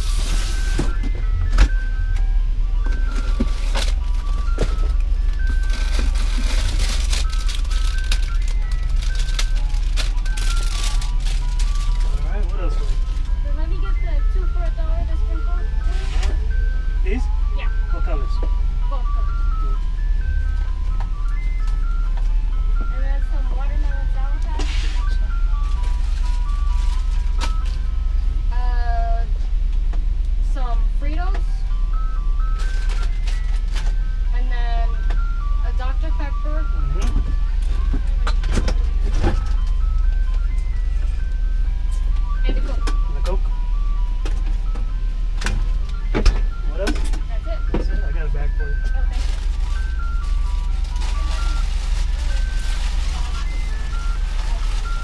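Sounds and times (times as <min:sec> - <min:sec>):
ice cream truck chime jingle: 0:00.0 - 0:55.0
steady low hum: 0:00.0 - 0:55.0
voices: 0:11.6 - 0:25.6, 0:28.4 - 0:29.4, 0:34.2 - 0:39.8, 0:45.9 - 0:55.0.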